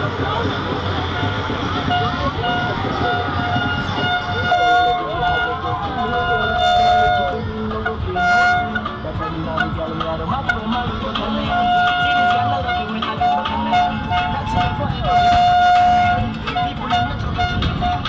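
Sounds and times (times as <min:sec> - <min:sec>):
crowd voices: 0:00.0 - 0:18.0
horn toots: 0:01.0 - 0:18.0.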